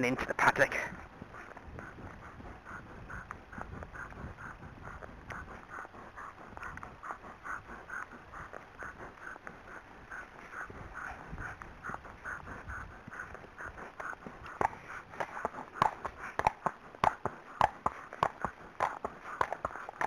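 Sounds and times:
hoof clops on tarmac: 1.2 - 20.0.

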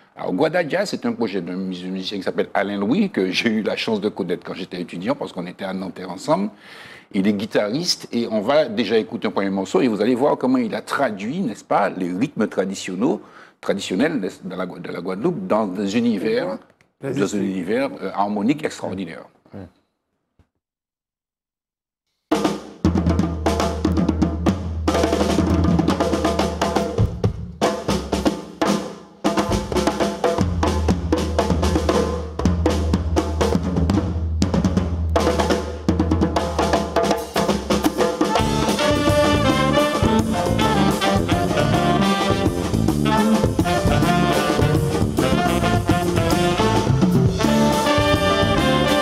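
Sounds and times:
drum kit: 22.3 - 49.0
horn section: 38.3 - 49.0
bass line: 38.4 - 49.0.

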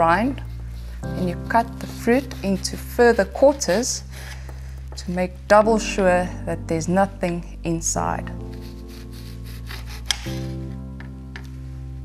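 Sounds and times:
knife rasping through orange rind: 0.0 - 4.5, 8.5 - 10.7
background music with sustained chords: 0.0 - 12.0.

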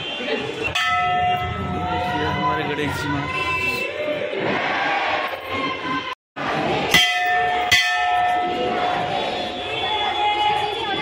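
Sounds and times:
metal temple bell ringing: 0.8 - 2.1, 7.0 - 8.6.

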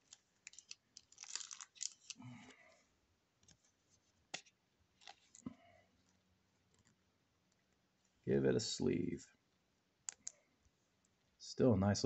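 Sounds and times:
cards rustling: 0.0 - 2.5, 3.4 - 5.5.

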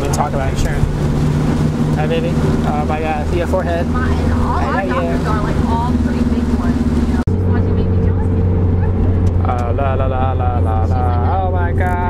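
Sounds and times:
different steady hum: 0.0 - 12.0
steady low hum: 0.0 - 12.0
indistinct voices: 1.9 - 12.0.

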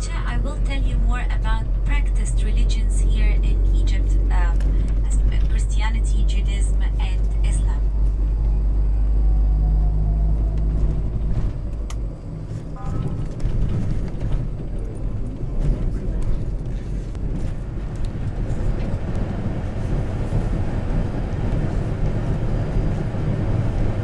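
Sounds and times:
people talking: 0.0 - 7.9, 12.8 - 13.3
bus engine and road rumble: 0.0 - 24.0.

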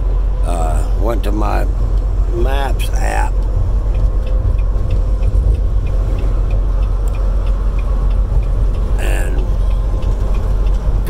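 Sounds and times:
faint regular ticking: 0.0 - 11.0
road noise: 0.0 - 11.0
truck engine rumble: 0.0 - 11.0.

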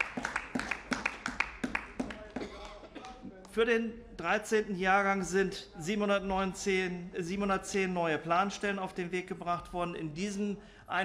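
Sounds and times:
scattered applause: 0.0 - 3.6.

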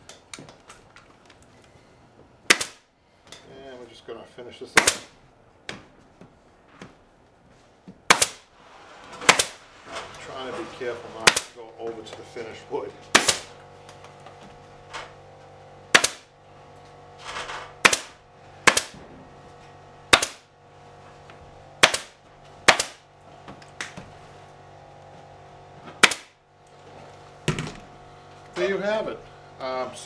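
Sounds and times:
pneumatic staple gun firing: 2.5 - 2.9, 4.8 - 5.2, 8.1 - 8.5, 9.2 - 9.6, 11.2 - 11.6, 13.1 - 13.6, 15.9 - 16.3, 17.4 - 19.0, 20.1 - 20.5, 21.8 - 23.1, 26.0 - 26.4.

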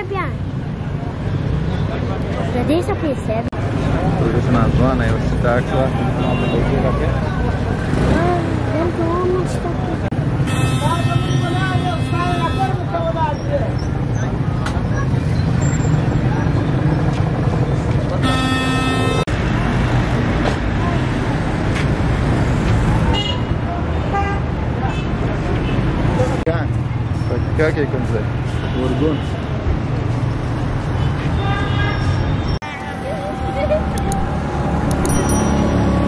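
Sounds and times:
voices: 0.0 - 19.1, 32.6 - 36.0
traffic rumble: 0.0 - 36.0
vehicle horn: 10.4 - 12.9, 18.2 - 19.3.

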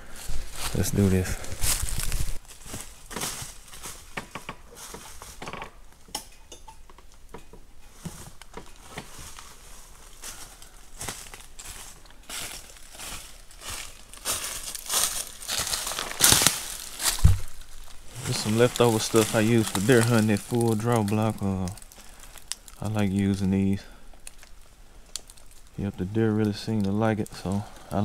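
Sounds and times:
footsteps crunching through dry leaves: 0.0 - 5.4, 8.0 - 23.7.

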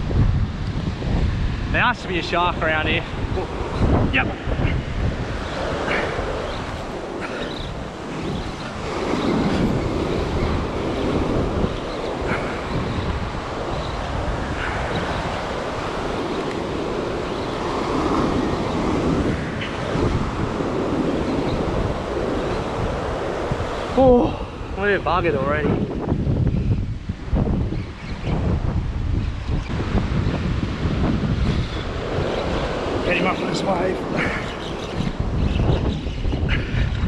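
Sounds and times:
ocean surf breaking on beach: 0.0 - 37.0
wind rumbling on microphone: 0.0 - 37.0.

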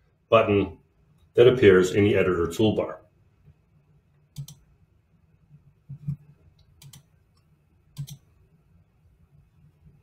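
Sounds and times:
computer mouse button clicking: 4.4 - 4.6, 5.9 - 7.1, 8.0 - 8.2.

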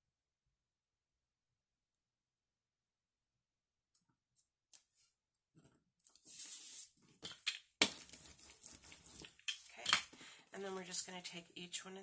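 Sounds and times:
paper rustling and scraping: 6.1 - 7.0, 7.9 - 9.8.

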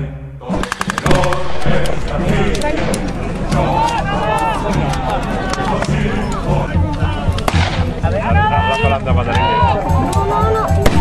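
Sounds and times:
machine gun burst: 0.6 - 1.6.

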